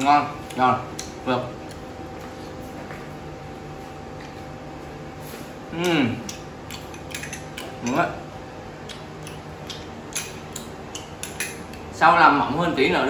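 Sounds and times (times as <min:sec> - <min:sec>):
person humming: 0:05.7 - 0:06.3.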